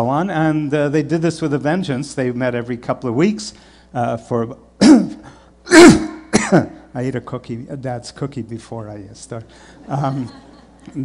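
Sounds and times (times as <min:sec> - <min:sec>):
man coughing: 0:04.8 - 0:06.9.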